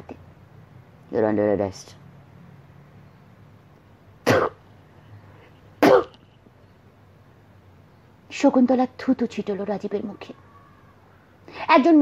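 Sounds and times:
person coughing: 0:04.2 - 0:04.6, 0:05.8 - 0:06.2.

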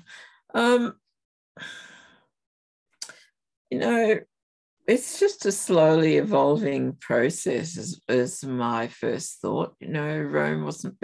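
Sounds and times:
long sigh: 0:01.6 - 0:02.3.

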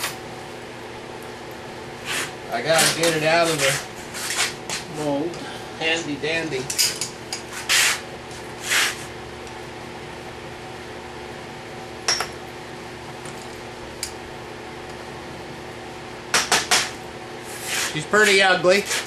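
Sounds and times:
steady hum: 0:00.0 - 0:19.0
metal scrape: 0:07.5 - 0:08.0, 0:17.5 - 0:19.0.

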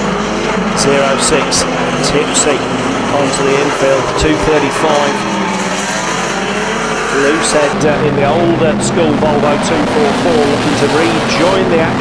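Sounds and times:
racing car engines: 0:00.0 - 0:12.0.

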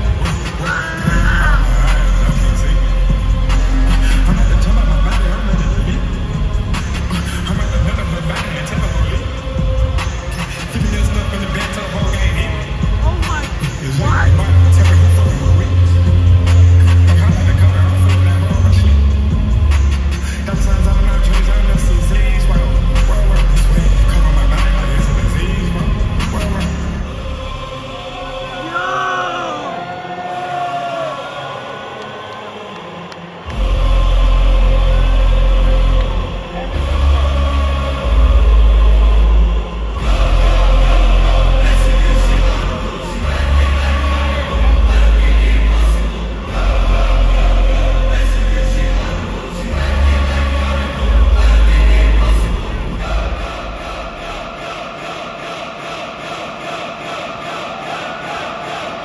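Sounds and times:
live concert music: 0:00.0 - 0:27.3, 0:33.5 - 0:54.3
heavy bass: 0:00.0 - 0:28.5, 0:33.5 - 0:54.9
people shouting: 0:28.2 - 0:48.1, 0:53.1 - 0:59.0
crowd whoops: 0:28.7 - 0:33.5.

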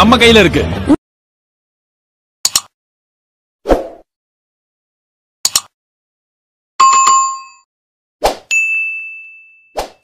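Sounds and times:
high bell ding: 0:06.8 - 0:07.6, 0:08.5 - 0:09.8.

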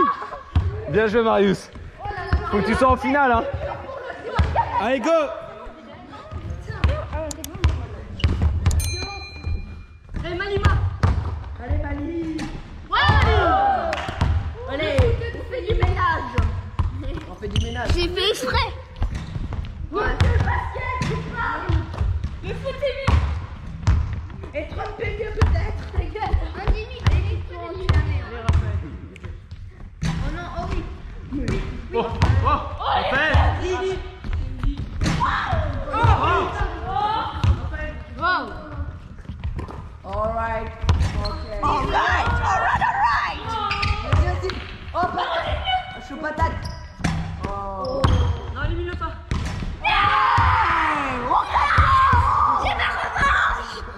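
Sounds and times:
children calling and shouting: 0:00.0 - 0:00.8, 0:12.8 - 0:16.6, 0:19.9 - 0:23.2, 0:41.6 - 0:46.3, 0:49.8 - 0:53.9
basketballs bouncing on wooden floor: 0:01.7 - 0:04.6, 0:06.2 - 0:08.8, 0:09.4 - 0:18.2, 0:18.9 - 0:32.5, 0:34.2 - 0:45.5.

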